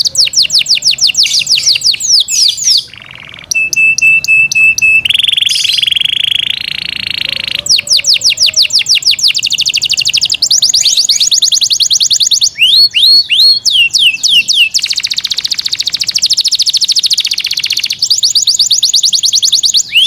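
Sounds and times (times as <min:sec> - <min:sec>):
canary singing: 0:00.0 - 0:20.0.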